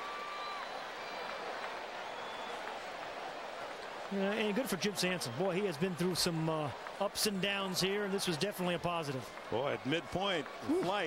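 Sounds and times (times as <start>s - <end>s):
stadium crowd cheering and applauding: 0.0s - 11.0s.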